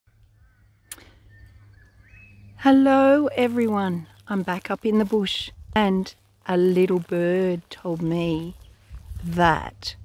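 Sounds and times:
low steady rumble: 0.1 - 10.0
distant bird whistles: 0.3 - 2.6
sharp click: 0.9 - 1.2.

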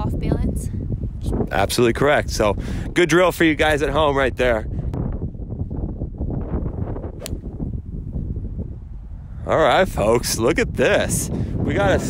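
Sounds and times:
wind rumble on microphone: 0.0 - 12.0
golf club striking ball: 7.2 - 7.6.

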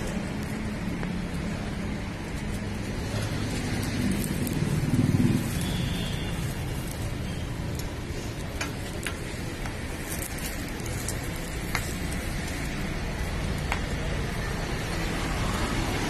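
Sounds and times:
flatbread sizzling on a griddle: 0.0 - 16.0.

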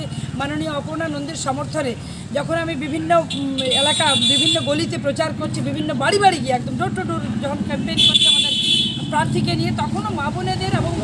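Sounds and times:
woman talking: 0.0 - 11.0
vehicle horn blast: 8.0 - 9.0.

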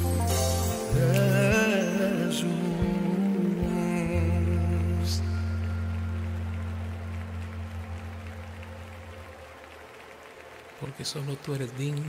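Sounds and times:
band's sustained final chord: 0.0 - 10.0.

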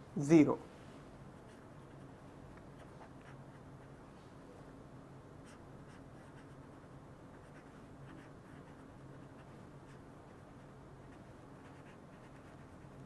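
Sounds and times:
low steady hum: 0.0 - 13.0
pen scratching while writing: 5.5 - 6.7, 7.3 - 13.0.

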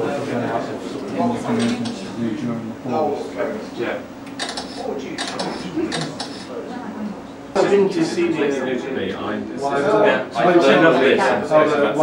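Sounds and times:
faint talking: 0.0 - 12.0
mechanical clicks and rattles: 4.2 - 6.5.

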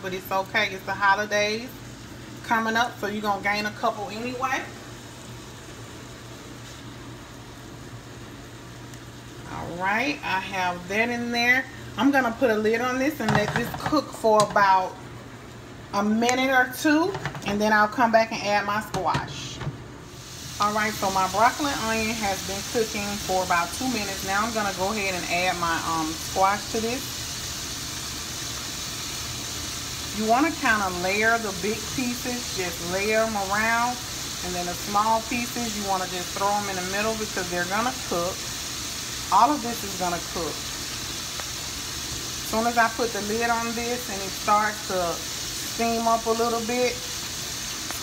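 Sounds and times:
vegetables sizzling in a skillet: 0.0 - 48.0.

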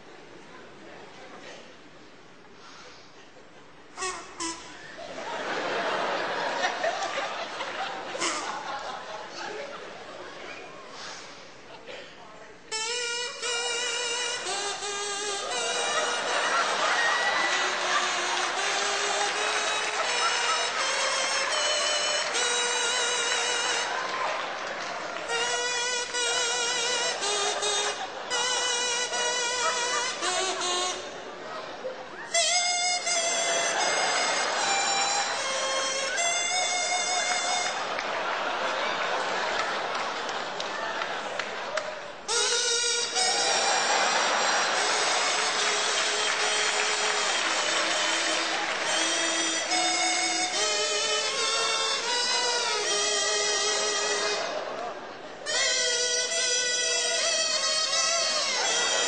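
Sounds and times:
kazoo playing a tune: 3.8 - 9.1, 12.7 - 40.0, 42.2 - 59.0.

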